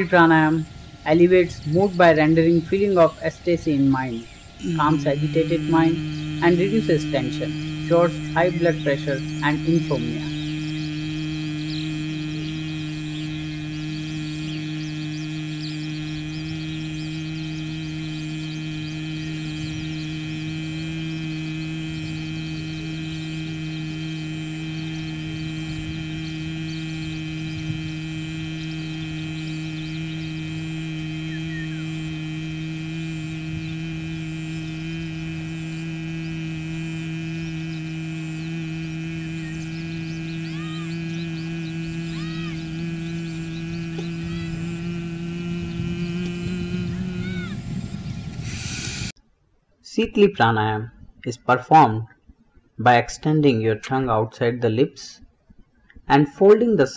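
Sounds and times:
person humming low: 0:00.0 - 0:49.2.

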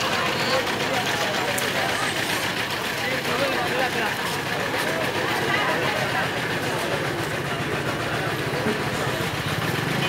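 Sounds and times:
low engine-like hum: 0:00.0 - 0:10.0.

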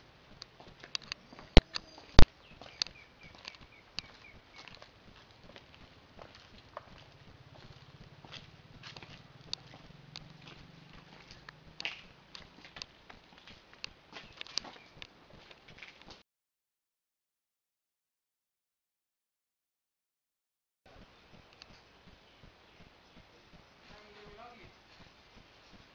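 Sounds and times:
footsteps: 0:00.0 - 0:16.2, 0:21.0 - 0:25.9.

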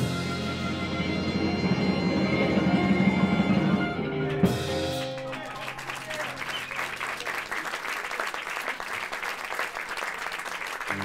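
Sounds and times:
blues band playing live: 0:00.0 - 0:05.9.

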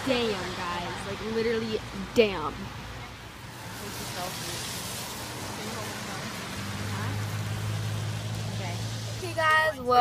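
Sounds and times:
car cabin road hiss and rumble: 0:00.0 - 0:10.0.

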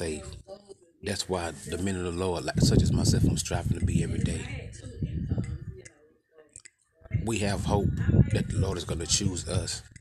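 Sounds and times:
man speaking: 0:01.0 - 0:04.4, 0:07.3 - 0:09.9.

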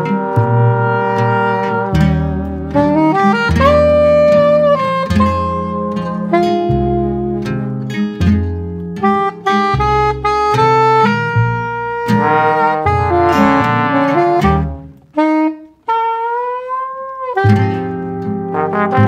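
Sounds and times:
plucked bass: 0:00.0 - 0:15.9, 0:16.9 - 0:19.0
jazz band playing: 0:00.0 - 0:19.0
soprano saxophone melody: 0:00.0 - 0:19.0.

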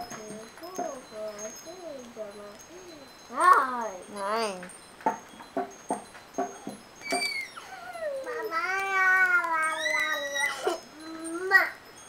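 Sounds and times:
child's voice: 0:00.0 - 0:04.7, 0:08.0 - 0:11.8.

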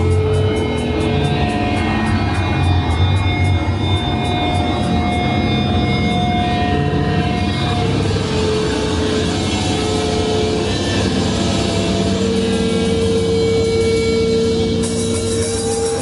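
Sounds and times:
distorted guitar and bass drone: 0:00.0 - 0:16.0
punk band playing live: 0:00.0 - 0:16.0.

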